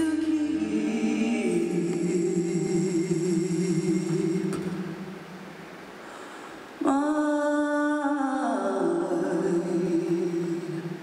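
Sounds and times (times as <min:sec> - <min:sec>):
woman singing long low note: 0:00.0 - 0:05.0, 0:06.8 - 0:11.0.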